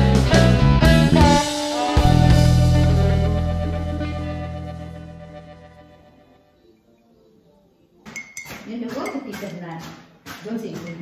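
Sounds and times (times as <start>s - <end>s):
dishes and cutlery clinking: 8.0s - 11.0s.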